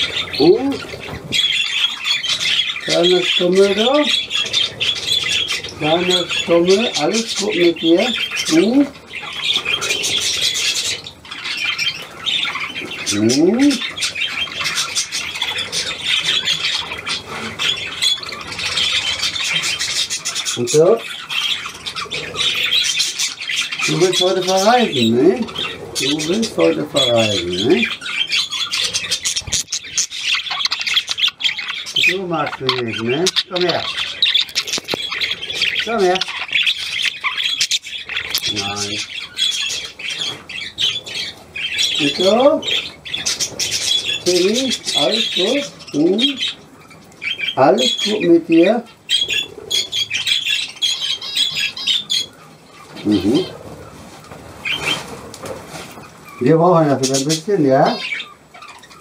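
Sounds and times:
budgerigars chirping and squawking: 0.0s - 59.0s.

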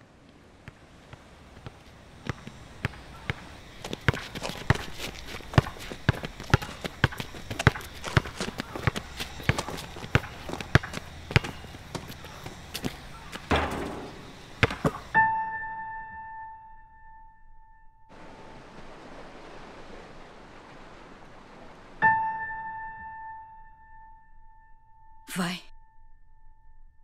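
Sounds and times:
basketball bouncing on asphalt: 0.6s - 15.2s
sneakers scuffing: 1.1s - 15.2s.

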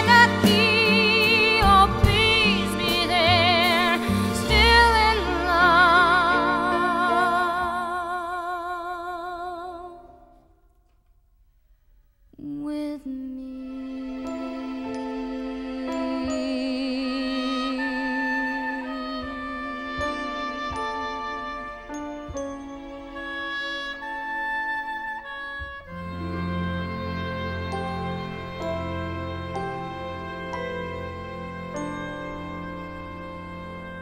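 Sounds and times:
orchestra playing held chords: 0.0s - 7.4s, 13.9s - 34.0s.

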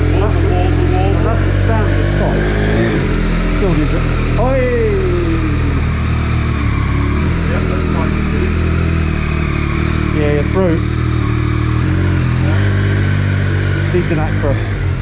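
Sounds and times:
motorcycle engine at low revs: 0.0s - 15.0s
short voice sound: 0.2s - 5.8s.

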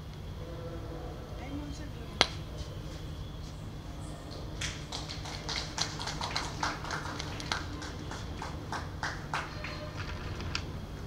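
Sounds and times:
steady low hum: 0.0s - 11.0s
people clapping: 4.3s - 10.6s.

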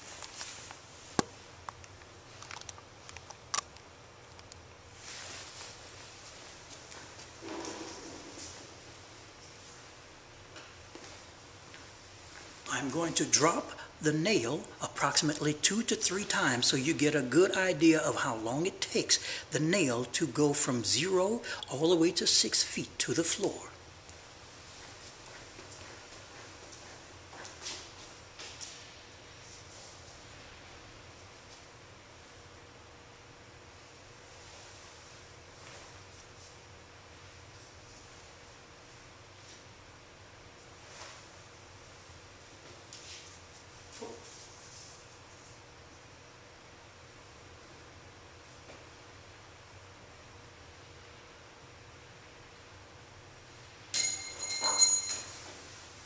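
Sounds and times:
faint soft rustle: 0.0s - 1.2s, 4.9s - 9.9s, 34.2s - 36.6s, 40.6s - 45.6s
metal nail clinking on hard floor: 53.9s - 55.5s.

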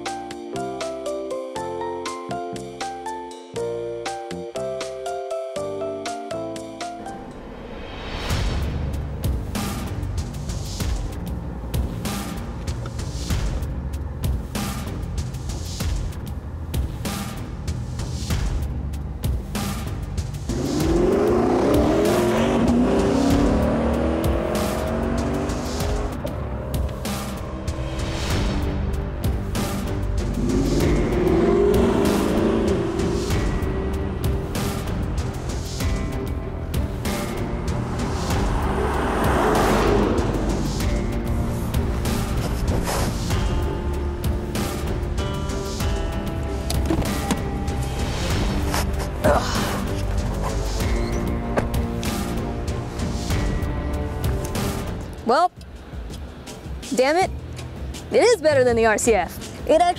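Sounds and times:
music with steady beat: 8.4s - 59.9s
car engine accelerating hard: 20.3s - 43.3s.

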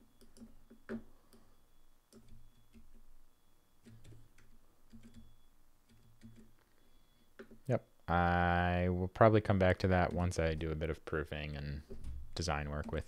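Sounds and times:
keyboard and mouse clicks: 0.1s - 1.5s, 2.1s - 3.0s, 3.8s - 6.6s.

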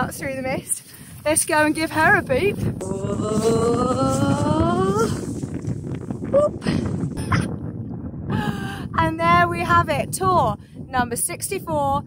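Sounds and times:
wind rumbling on microphone: 0.0s - 12.0s
short vocal sounds: 2.8s - 5.3s.

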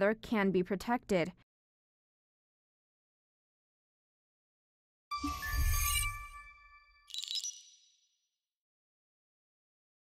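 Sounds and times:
high-pitched chime twinkle: 5.1s - 8.2s.

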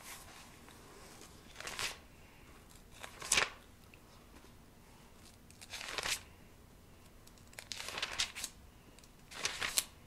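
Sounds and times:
pages being turned: 1.2s - 2.0s, 2.7s - 3.6s, 5.2s - 6.3s, 7.3s - 8.6s, 9.3s - 10.0s.

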